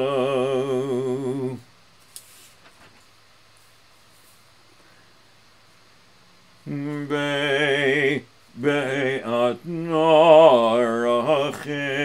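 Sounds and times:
man chanting prayer: 6.7s - 12.0s.

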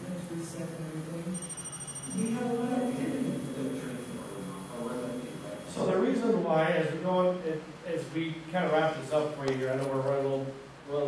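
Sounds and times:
indistinct voices: 0.0s - 6.2s
high-pitched electronic tone: 1.2s - 5.9s.

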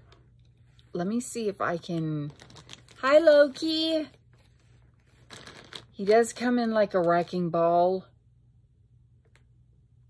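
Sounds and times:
faint rustles and light clicks: 1.8s - 3.1s.

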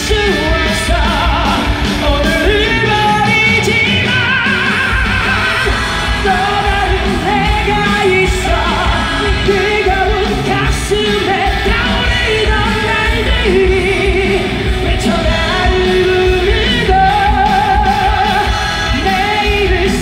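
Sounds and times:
loud band with heavy bass: 0.0s - 20.0s
person singing: 0.0s - 20.0s.

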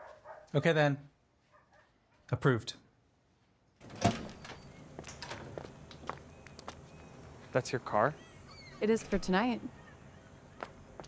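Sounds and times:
outdoor background noise: 0.0s - 11.0s
door squeak: 3.8s - 5.7s, 8.2s - 9.3s
glass door swinging open: 3.8s - 5.7s.

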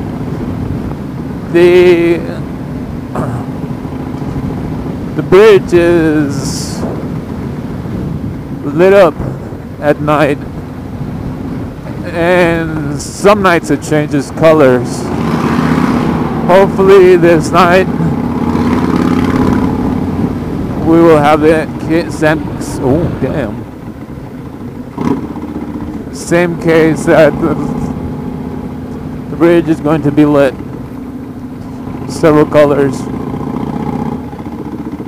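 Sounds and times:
motorcycle exhaust drone: 0.0s - 5.4s, 9.2s - 35.0s
person speaking: 20.8s - 23.7s, 26.1s - 28.0s.

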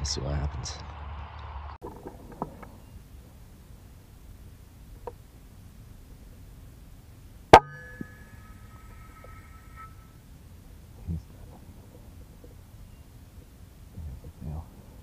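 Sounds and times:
faint high ringing: 2.7s - 13.7s.

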